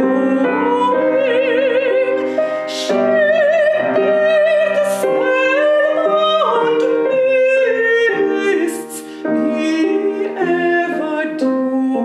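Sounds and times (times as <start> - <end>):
piano accompaniment: 0.0 - 12.0
woman singing: 0.0 - 12.0.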